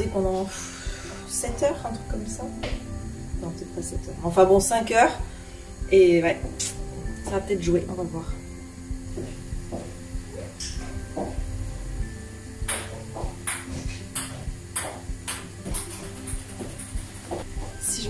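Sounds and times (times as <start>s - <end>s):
quiet background music: 0.0s - 18.0s.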